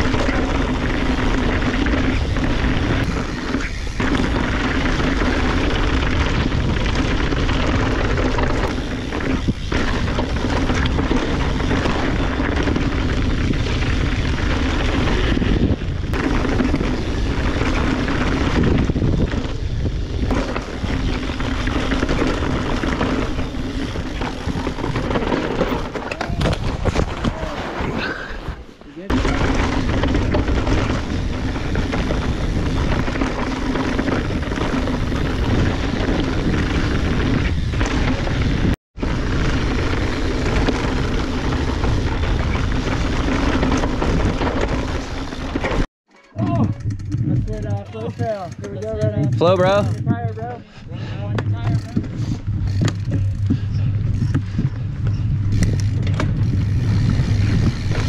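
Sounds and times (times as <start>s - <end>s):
bike tyres rattling over dirt: 0.0s - 58.0s
wind noise on microphone: 0.0s - 58.0s.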